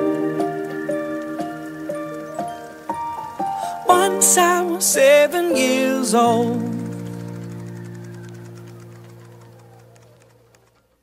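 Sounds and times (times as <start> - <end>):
pop song held chord: 0.0 - 7.5.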